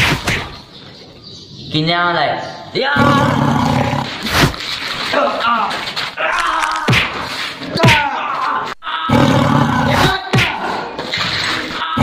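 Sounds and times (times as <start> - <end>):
loud roar: 3.0 - 4.2, 9.1 - 10.7.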